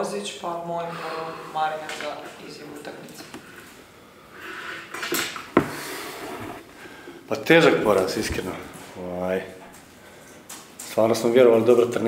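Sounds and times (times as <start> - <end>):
breathing: 0.8 - 1.7, 3.4 - 5.0, 5.6 - 7.3, 9.9 - 10.6.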